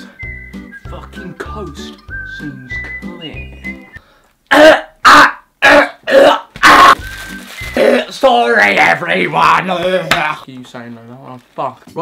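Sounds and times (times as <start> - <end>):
background music: 0.0 - 4.0, 6.8 - 10.4
man coughing loudly: 4.5 - 6.5
crisp packet crackling: 7.0 - 8.7.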